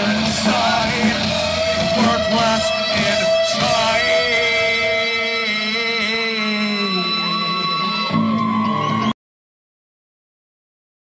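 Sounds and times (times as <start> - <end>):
live band music: 0.0 - 9.1.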